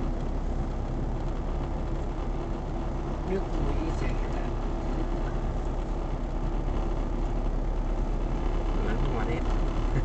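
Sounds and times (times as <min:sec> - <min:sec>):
car cabin road noise: 0:00.0 - 0:10.0.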